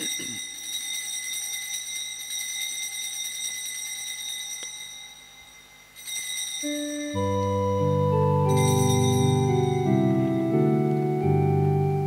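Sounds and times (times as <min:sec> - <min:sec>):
altar bells ringing: 0:00.0 - 0:10.9.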